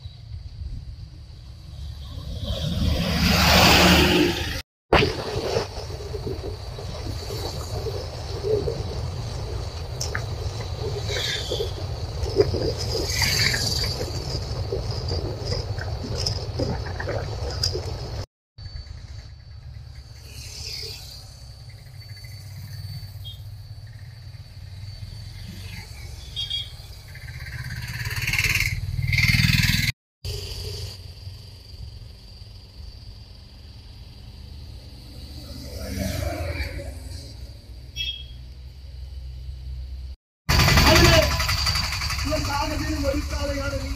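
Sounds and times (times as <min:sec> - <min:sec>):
traffic rumble: 0:00.0 - 0:43.9
car passing: 0:01.7 - 0:04.6, 0:34.0 - 0:37.8
autorickshaw passing: 0:18.6 - 0:31.8, 0:34.0 - 0:37.9, 0:38.6 - 0:43.9
motorcycles passing: 0:19.0 - 0:31.4, 0:34.6 - 0:37.8.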